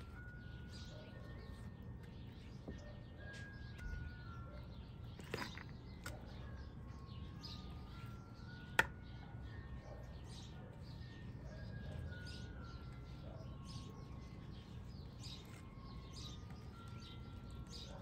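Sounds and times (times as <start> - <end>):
birds chirping: 0.0 - 18.0.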